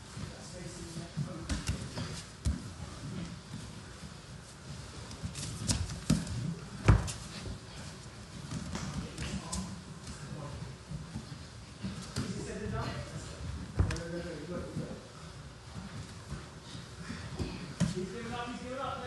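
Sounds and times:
bodies thumping and sliding on mats: 0.0 - 19.0.

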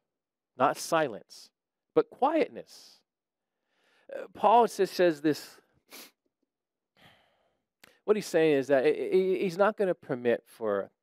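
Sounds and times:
faint breath: 3.6 - 4.1, 7.0 - 8.0.

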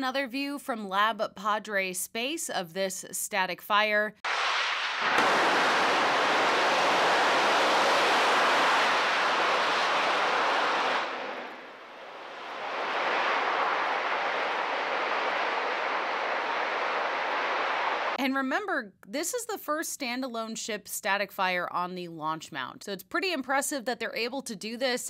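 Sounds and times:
rocket engine roaring: 4.3 - 18.2.

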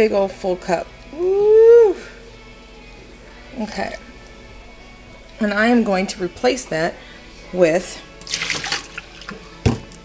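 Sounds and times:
liquid splashing into metal sink: 8.2 - 10.0.

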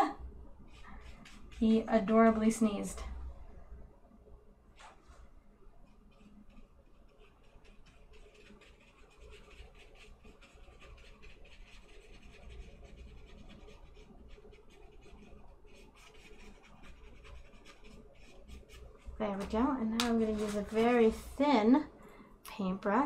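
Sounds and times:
paintbrush scratching on paper: 0.6 - 2.6, 5.9 - 21.4.

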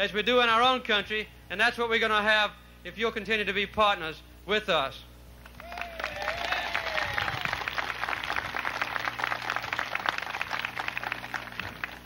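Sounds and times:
steady low hum: 0.0 - 12.0
crowd applauding: 5.5 - 12.0.

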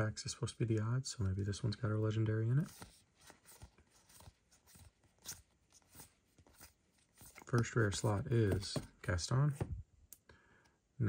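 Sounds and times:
trading cards clicking and rustling: 2.6 - 9.0.

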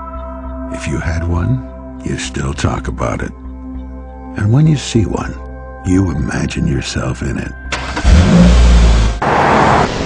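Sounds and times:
loud rush of noise: 9.0 - 10.0.

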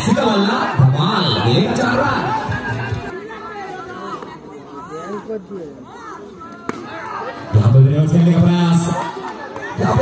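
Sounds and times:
man talking: 0.0 - 2.9
crowd chatter: 0.0 - 10.0
music playing: 0.8 - 3.1.

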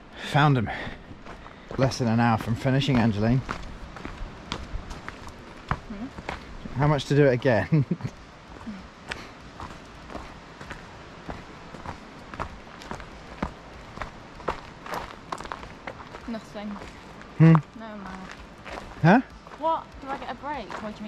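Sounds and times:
footsteps on gravel: 0.6 - 6.9, 8.5 - 21.0.

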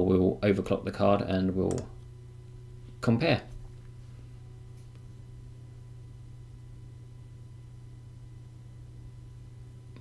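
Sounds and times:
computer cooling fans humming: 0.0 - 10.0.

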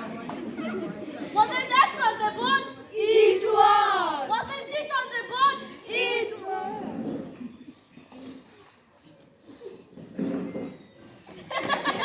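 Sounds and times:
murmur of children's chatter: 0.0 - 12.0.

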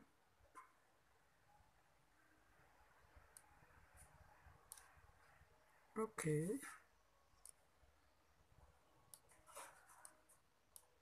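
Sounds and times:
faint computer mouse clicks: 7.4 - 7.6, 9.1 - 10.9.

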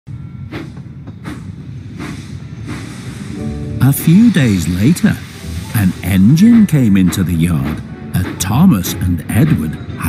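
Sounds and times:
steam engine chuffing: 0.6 - 9.7.

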